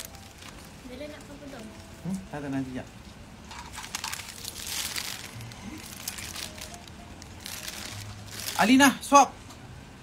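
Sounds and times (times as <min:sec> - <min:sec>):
food wrapping crinkling: 0:00.0 - 0:02.0, 0:03.4 - 0:09.0.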